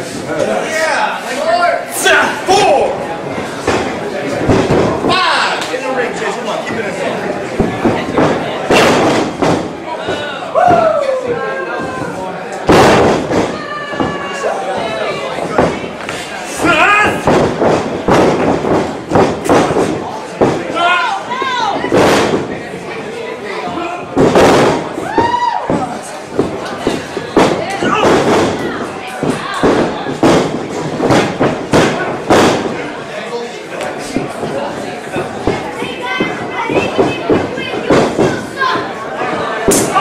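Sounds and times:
bodies slamming onto ring canvas: 0:07.6 - 0:11.0, 0:12.0 - 0:14.3, 0:15.4 - 0:20.8, 0:21.8 - 0:22.6, 0:24.1 - 0:32.8
people shouting: 0:10.0 - 0:12.2, 0:25.0 - 0:26.0, 0:27.6 - 0:28.8.

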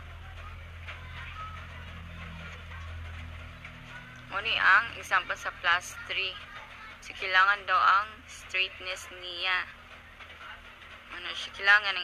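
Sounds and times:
faint indistinct speech: 0:00.0 - 0:12.0
steady low hum: 0:00.0 - 0:12.0.

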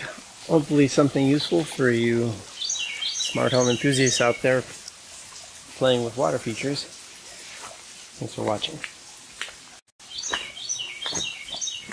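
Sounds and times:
bird chirping: 0:02.5 - 0:04.6, 0:10.0 - 0:11.9.

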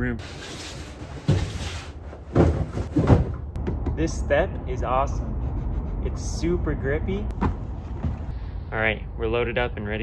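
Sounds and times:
cardboard packages thumping: 0:01.2 - 0:03.5.

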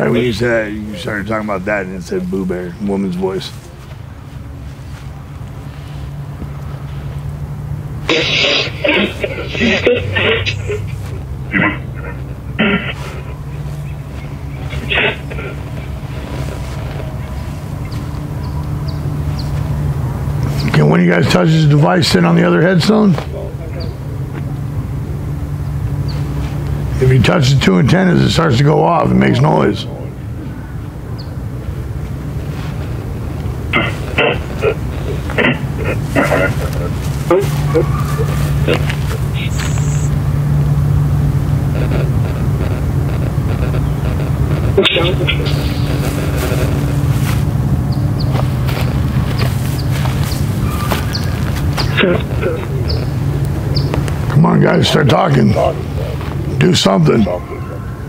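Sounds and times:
speaker low hum: 0:00.0 - 0:58.0
chopped speech-like fragments: 0:44.8 - 0:46.1.

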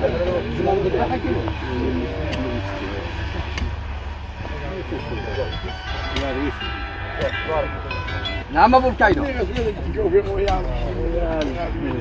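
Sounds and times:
men talking: 0:00.0 - 0:12.0
steady low rumble: 0:00.0 - 0:12.0.

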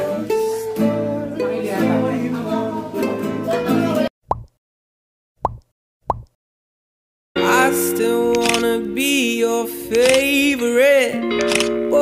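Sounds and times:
upward-sweeping pop blip: 0:04.3 - 0:04.6, 0:05.4 - 0:06.4.

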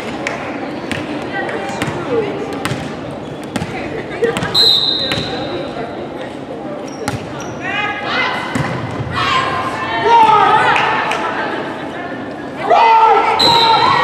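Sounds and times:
high shoe squeal: 0:04.5 - 0:05.6
players shouting: 0:12.6 - 0:14.0.

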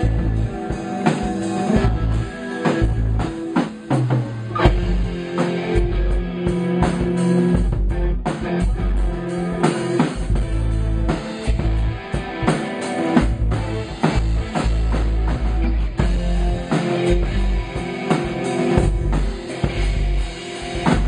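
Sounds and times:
electric guitar through amplifier: 0:00.0 - 0:21.0
steady drum beat: 0:00.0 - 0:21.0.

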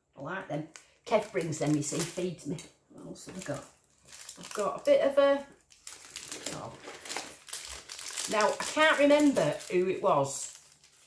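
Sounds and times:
wrapper crinkling and rustling: 0:00.6 - 0:11.0.

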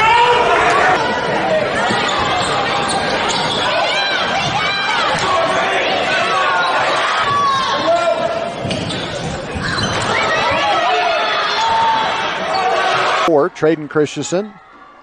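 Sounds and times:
voices of players and spectators: 0:00.0 - 0:15.0
sneakers squeaking: 0:00.9 - 0:05.7, 0:06.6 - 0:13.1.

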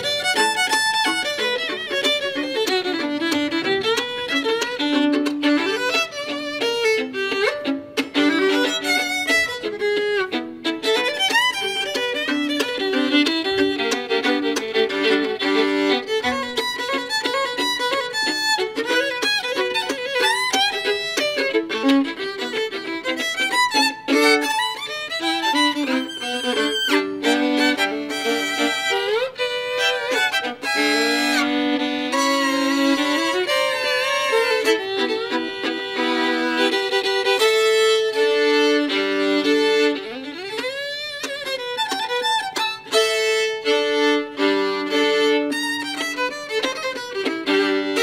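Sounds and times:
fiddle duet: 0:00.0 - 0:48.0.

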